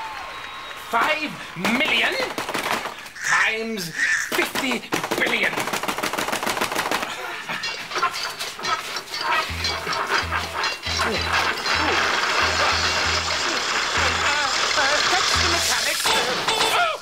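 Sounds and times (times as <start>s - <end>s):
rapid clatter of clicks: 4.4s - 16.7s.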